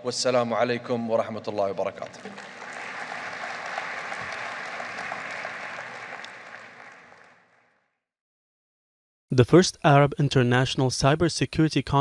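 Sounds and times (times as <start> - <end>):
audience applauding: 1.9 - 7.8.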